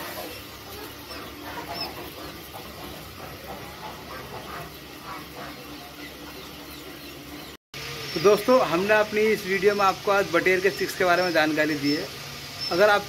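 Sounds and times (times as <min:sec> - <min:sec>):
quail chicks peeping: 0:00.0 - 0:13.0.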